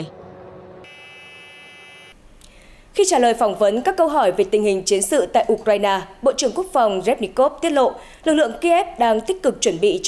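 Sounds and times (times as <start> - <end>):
high electronic buzz: 0.8 - 2.2.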